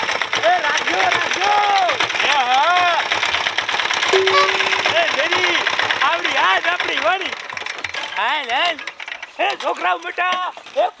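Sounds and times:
cart engine knocking: 0:00.0 - 0:10.8
steady held tone: 0:04.1 - 0:05.5.

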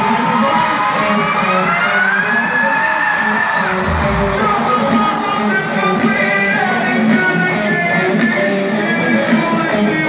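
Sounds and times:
long note gliding upward: 0:03.8 - 0:05.0.

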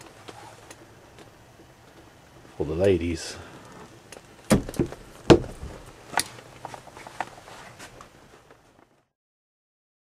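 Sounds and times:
wooden cupboard door knocks and clicks: 0:04.5 - 0:05.6.

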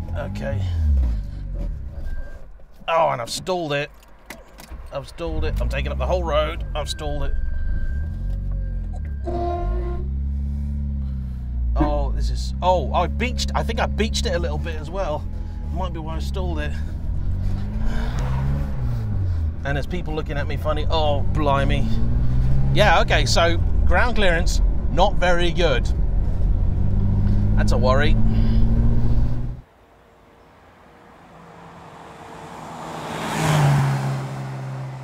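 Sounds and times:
small car engine revving: 0:15.2 - 0:19.6, 0:20.3 - 0:29.6.

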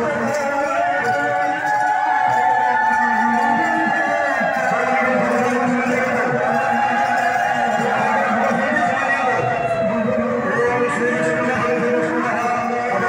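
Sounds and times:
man singing into a microphone: 0:00.0 - 0:13.0.

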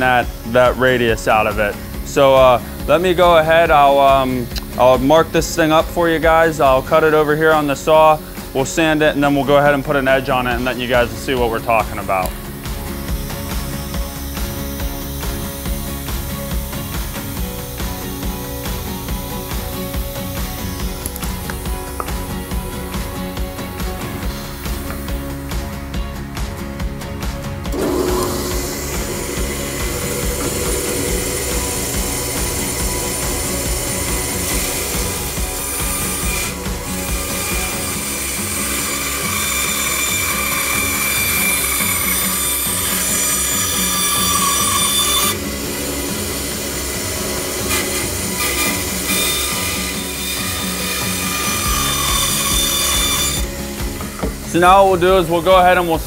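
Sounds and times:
bandsaw cutting wood: 0:00.0 - 0:25.9, 0:27.6 - 0:56.0.

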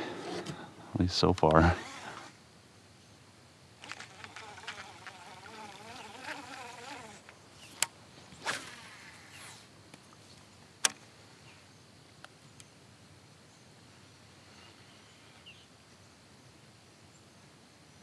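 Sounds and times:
sharp clicks: 0:03.8 - 0:05.2
flying insect buzzing: 0:03.8 - 0:09.8.

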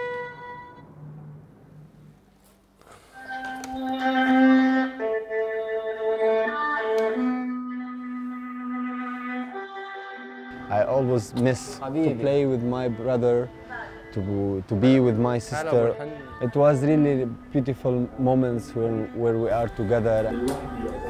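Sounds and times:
long bowed violin note: 0:00.0 - 0:01.4, 0:03.1 - 0:21.0
slow bowed-string melody: 0:00.0 - 0:02.1, 0:03.1 - 0:21.0.

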